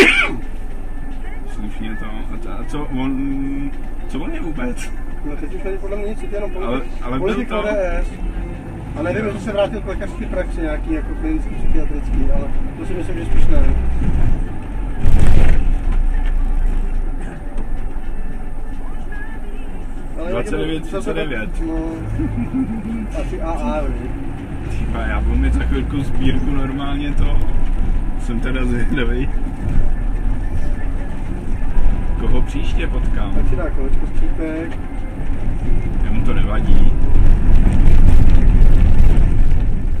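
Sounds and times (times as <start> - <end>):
bus engine rumble: 0.0 - 40.0
road noise: 0.0 - 40.0.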